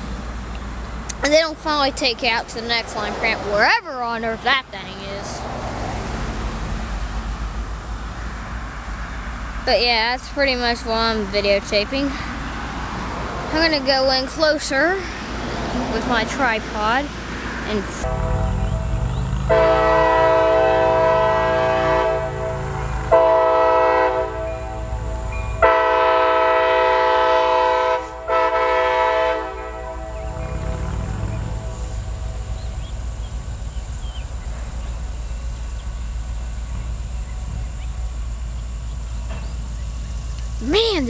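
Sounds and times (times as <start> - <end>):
locomotive rumbling past: 0.0 - 41.0
locomotive air horn blasts: 18.0 - 32.6.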